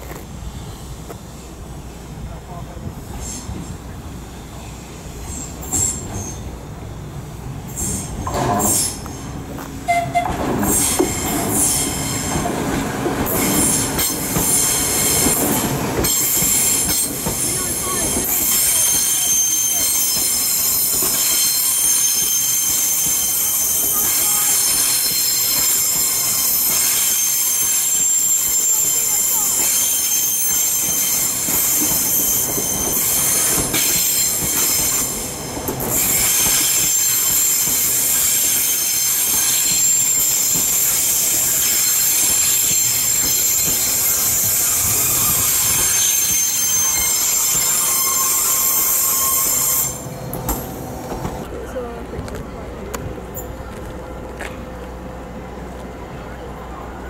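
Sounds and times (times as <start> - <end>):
train rolling rumble: 0.0 - 57.0
high-pitched wheel squeal: 17.8 - 35.2, 36.0 - 50.4.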